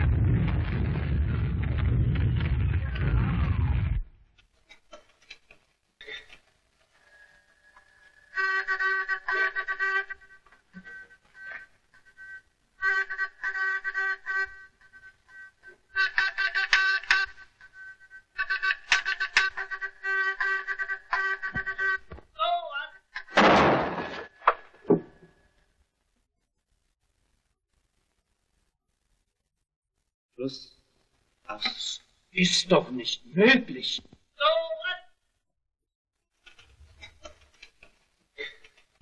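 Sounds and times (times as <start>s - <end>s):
morse buzzer keyed: 8.3s - 22.1s
shell burst blast: 23.3s - 24.4s.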